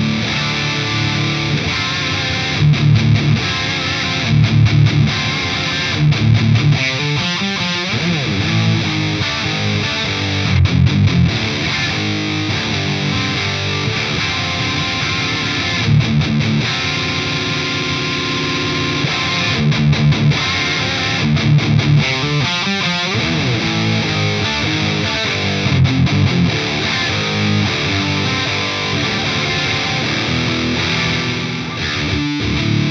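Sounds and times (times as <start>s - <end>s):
distorted electric guitar riffing: 0.0s - 32.9s.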